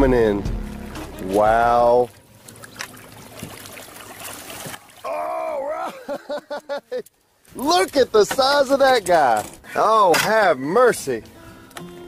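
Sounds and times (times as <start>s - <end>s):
water splashing and trickling: 0.0s - 11.2s.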